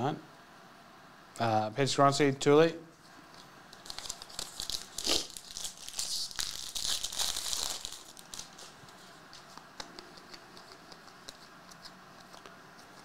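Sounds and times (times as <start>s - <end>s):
foil wrapper tearing and crinkling: 3.8s - 8.8s.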